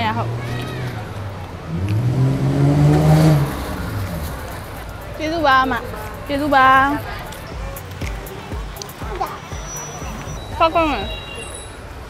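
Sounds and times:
vehicle engine passing by: 0.0s - 12.0s.

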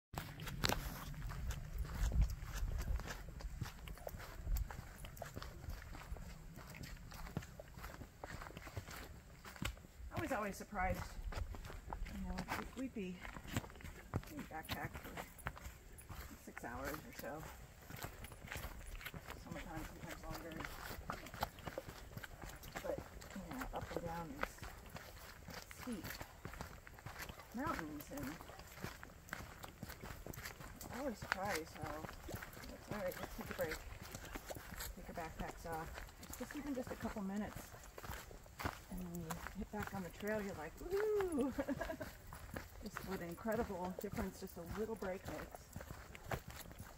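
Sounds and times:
footsteps on dry leaves: 0.2s - 46.9s.

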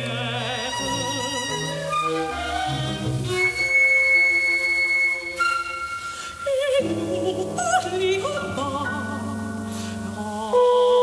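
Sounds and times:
chamber ensemble bowed strings: 0.4s - 6.5s.

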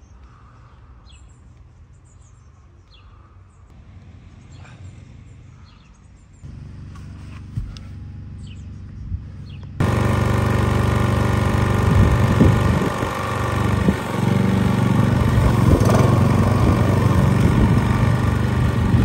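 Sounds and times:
lawn mower engine running: 9.8s - 19.0s.

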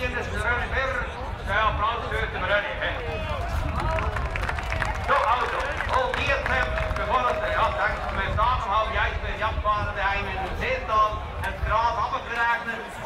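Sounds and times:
man talking into microphone: 0.0s - 4.0s, 5.0s - 13.0s.

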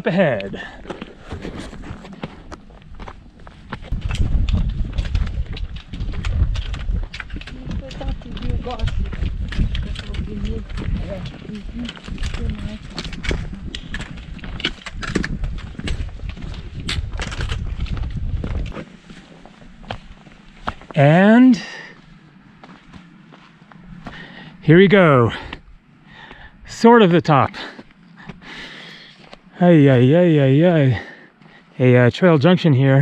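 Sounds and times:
footsteps on rocky trail: 0.0s - 31.8s
trekking poles clicking on rock: 0.8s - 18.9s
low rumble: 1.7s - 20.9s.

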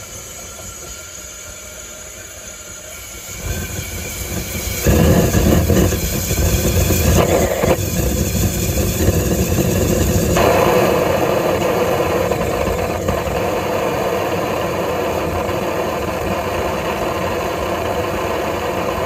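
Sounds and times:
forge burner roaring: 0.0s - 19.0s.

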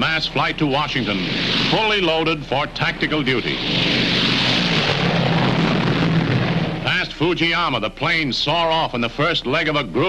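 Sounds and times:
propeller aircraft engines roaring: 0.0s - 9.3s.

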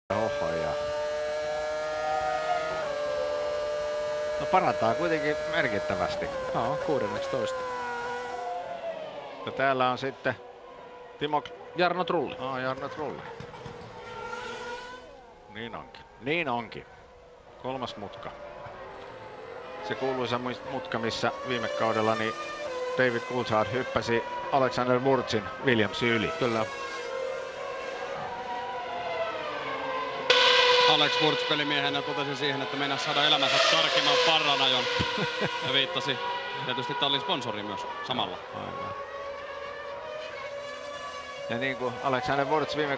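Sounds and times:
racing car engine at high revs: 0.1s - 9.5s, 12.8s - 15.4s, 18.2s - 42.9s.

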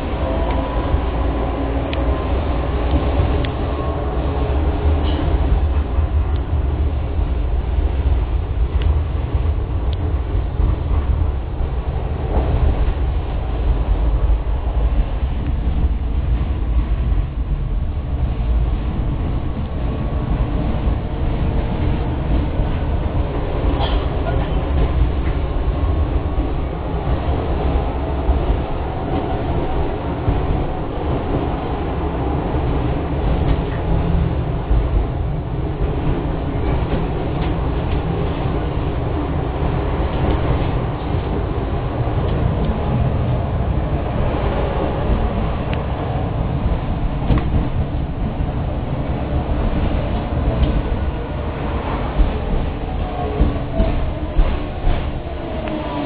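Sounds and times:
tram wheels rumbling on rails: 0.0s - 56.0s.

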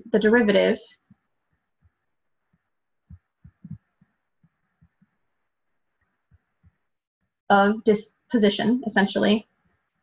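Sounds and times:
stylus knocking on tablet screen: 1.1s - 5.2s.

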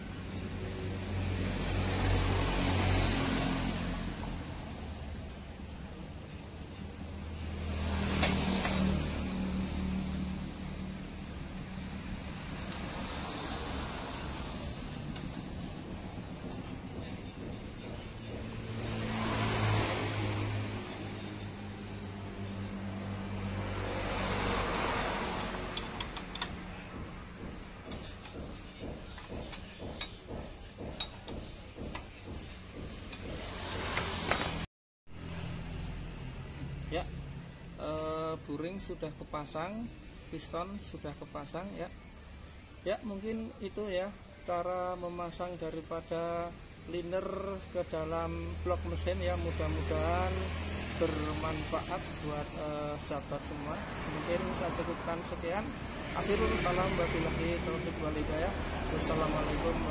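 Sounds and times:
road vehicles passing: 0.0s - 59.9s
hand tools clicking on metal: 15.1s - 15.5s, 24.7s - 32.2s.

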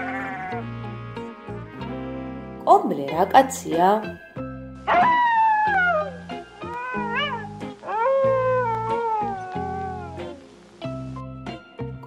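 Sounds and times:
meow-like animal calls: 0.0s - 0.7s, 4.9s - 10.4s
background music: 0.0s - 12.0s.

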